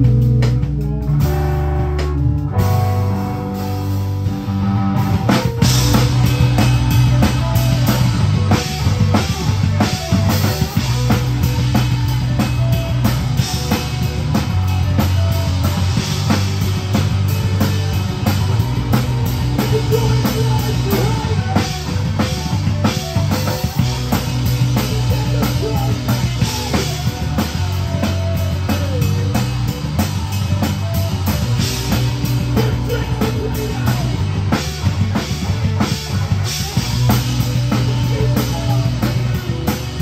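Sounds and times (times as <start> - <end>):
bass guitar: 0.0 - 40.0
drum kit played hard: 0.0 - 40.0
electric guitars: 0.0 - 40.0.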